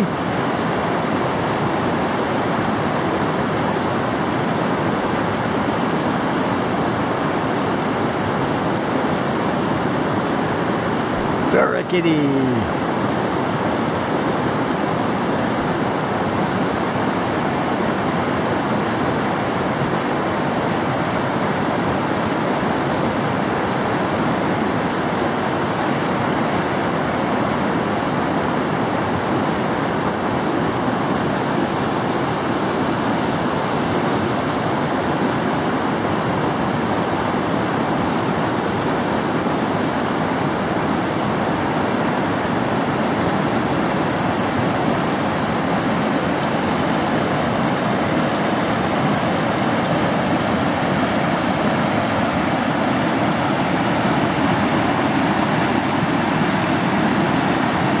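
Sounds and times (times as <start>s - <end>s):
river rushing over rocks: 0.0s - 58.0s.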